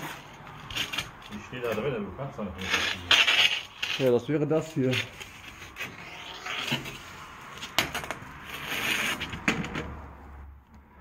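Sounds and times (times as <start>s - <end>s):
scraping and rustling: 0.0s - 10.0s.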